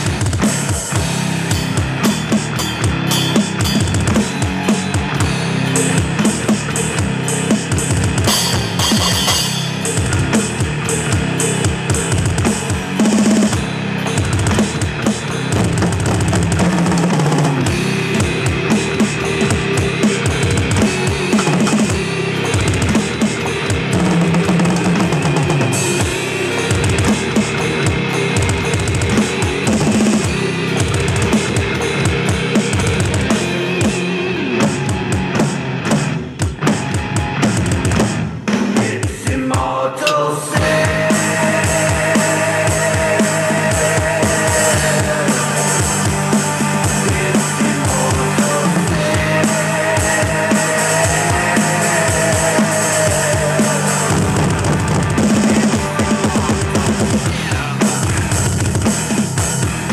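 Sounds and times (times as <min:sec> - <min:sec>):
fast electronic drumming: 0:00.0 - 0:39.7, 0:40.6 - 0:59.9
heavy metal instrumental: 0:00.0 - 0:59.9.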